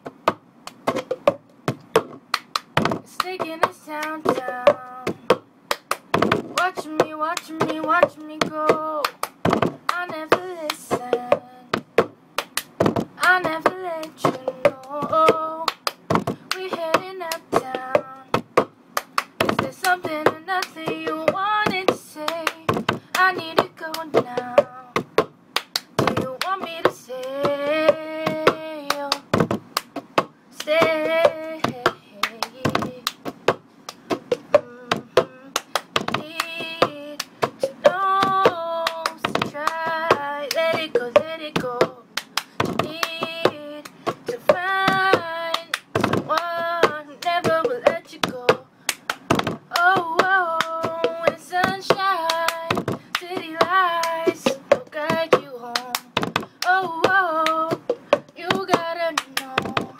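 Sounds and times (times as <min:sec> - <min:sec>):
hand claps: 0:00.0 - 0:59.9
girl singing a pop song: 0:02.8 - 0:05.4, 0:06.1 - 0:12.0, 0:12.8 - 0:18.5, 0:19.3 - 0:25.2, 0:25.9 - 0:29.6, 0:30.5 - 0:33.3, 0:34.2 - 0:59.9.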